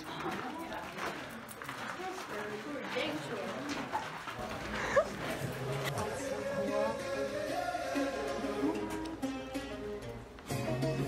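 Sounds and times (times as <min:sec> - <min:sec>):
people talking: 0:00.0 - 0:07.4.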